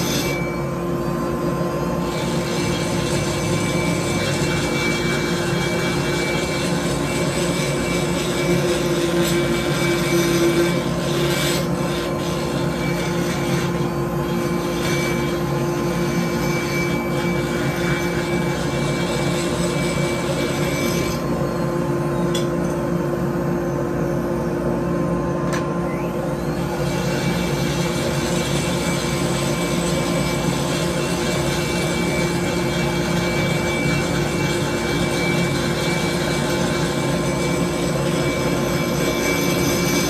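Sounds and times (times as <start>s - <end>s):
burr rasping metal: 0.0s - 21.4s, 26.4s - 40.0s
rotary grinder whining: 0.0s - 40.0s.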